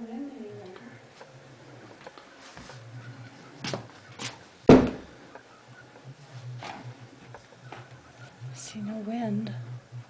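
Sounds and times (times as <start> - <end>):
sharp thump: 4.7 - 5.1.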